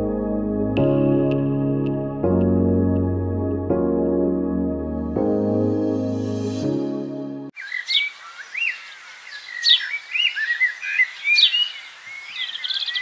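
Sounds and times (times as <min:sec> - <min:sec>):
music: 0:00.0 - 0:07.5
bird trill: 0:07.6 - 0:13.0
bird whistling and calling: 0:07.6 - 0:13.0.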